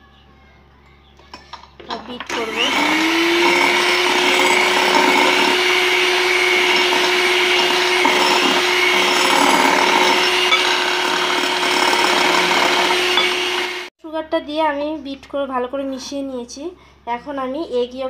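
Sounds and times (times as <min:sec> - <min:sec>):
electric hand mixer whipping: 0:02.2 - 0:13.9.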